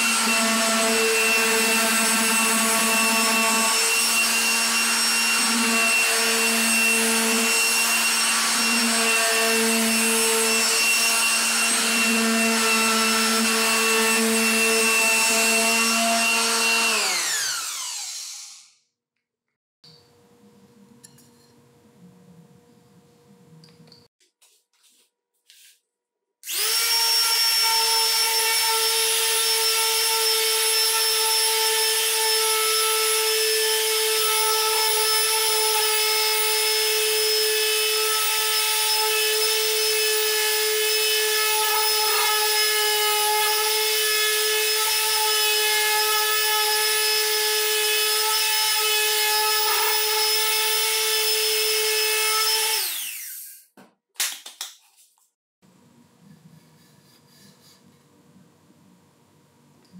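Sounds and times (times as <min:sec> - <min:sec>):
electric sander sanding wood: 0:00.0 - 0:18.6, 0:26.5 - 0:53.5.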